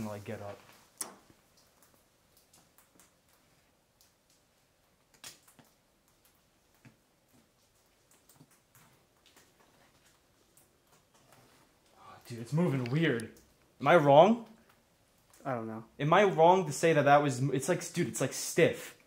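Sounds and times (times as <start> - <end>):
faint clicks and rustles: 0.0 - 13.8.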